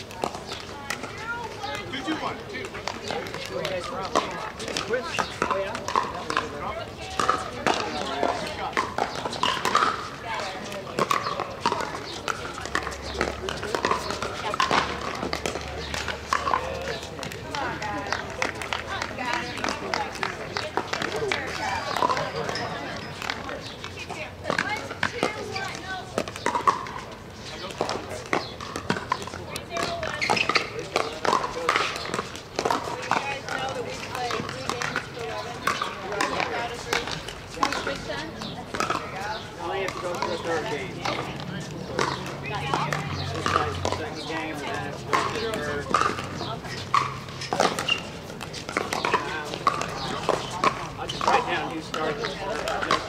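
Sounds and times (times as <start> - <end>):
people talking: 0.0 - 53.0
paddles hitting plastic ball: 44.9 - 53.0.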